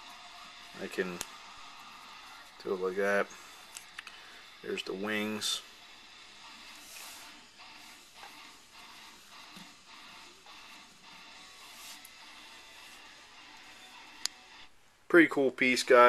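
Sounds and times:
faint music: 0.0 - 16.0.

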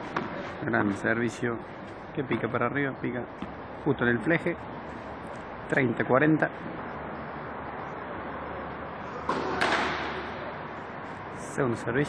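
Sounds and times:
racket hitting tennis ball: 0.0 - 0.6, 9.2 - 10.4
steady background noise: 0.0 - 12.0.

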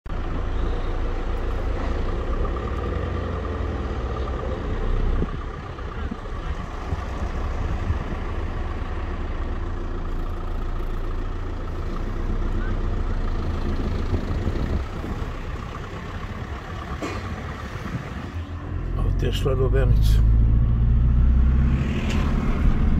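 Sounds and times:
cars and trucks passing: 0.1 - 22.9.

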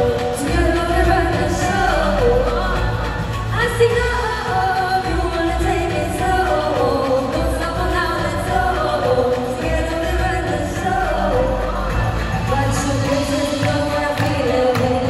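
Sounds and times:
amplified backing music with bass: 0.0 - 15.0.

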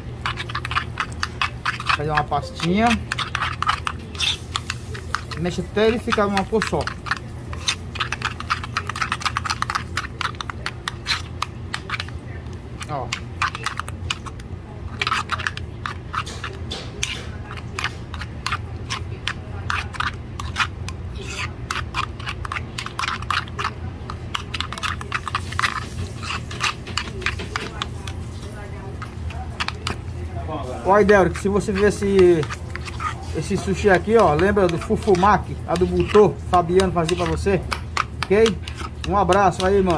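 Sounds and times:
spoon scraping a bowl: 0.0 - 39.9.

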